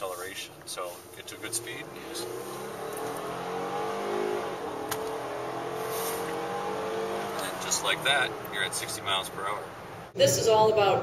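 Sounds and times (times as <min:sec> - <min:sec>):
car engine accelerating hard: 0:01.0 - 0:10.1.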